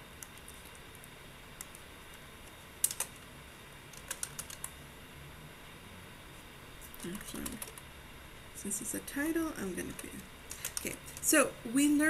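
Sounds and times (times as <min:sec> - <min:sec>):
keyboard keystrokes: 0:02.8 - 0:03.1, 0:03.9 - 0:04.7.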